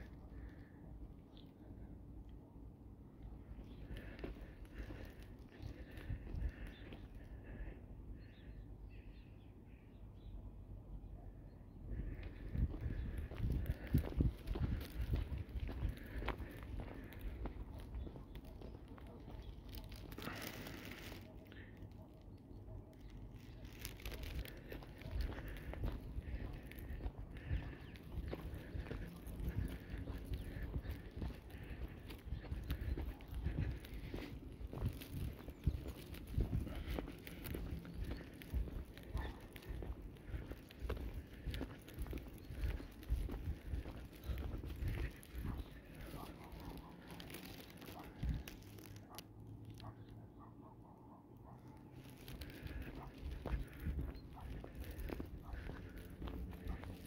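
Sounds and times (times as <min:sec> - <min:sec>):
faint outdoor ambience: 0:00.0 - 0:57.0
low rumble of wind on microphone: 0:02.9 - 0:08.5, 0:11.7 - 0:21.8, 0:22.4 - 0:49.2, 0:52.0 - 0:57.0
footsteps on gravel: 0:03.6 - 0:07.2, 0:11.9 - 0:21.8, 0:23.1 - 0:49.2, 0:52.0 - 0:57.0.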